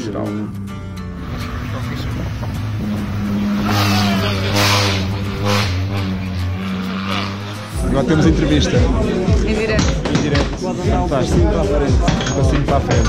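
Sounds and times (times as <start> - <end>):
background music: 0.0 - 13.0
road noise: 0.0 - 13.0
race car engine at speed: 0.9 - 10.2.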